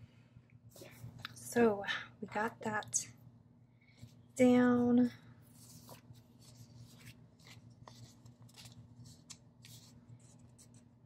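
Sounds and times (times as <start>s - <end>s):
paper rustles: 5.5s - 10.9s.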